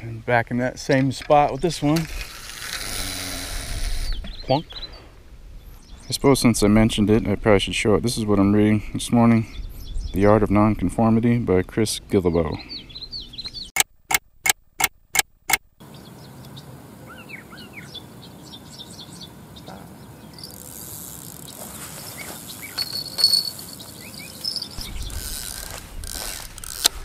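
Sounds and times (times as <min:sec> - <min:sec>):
birds chirping: 0:00.0 - 0:13.8, 0:15.8 - 0:27.0
outdoor background noise: 0:00.0 - 0:27.0
sharp clicks: 0:13.8 - 0:15.7
rustling noise: 0:20.6 - 0:27.0.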